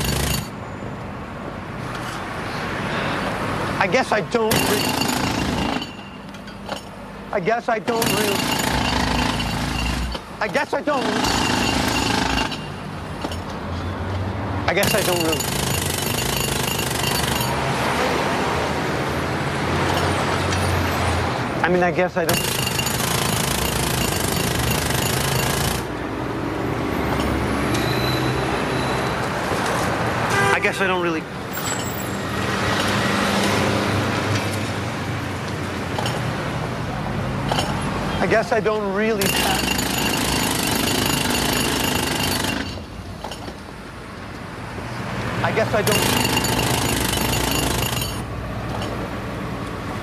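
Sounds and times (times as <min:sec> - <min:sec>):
jackhammer hammering: 0:00.0 - 0:00.5, 0:04.4 - 0:06.1, 0:07.8 - 0:13.5, 0:14.7 - 0:17.7, 0:22.2 - 0:26.0, 0:39.0 - 0:43.4, 0:45.5 - 0:48.3
city street traffic: 0:00.0 - 0:50.0.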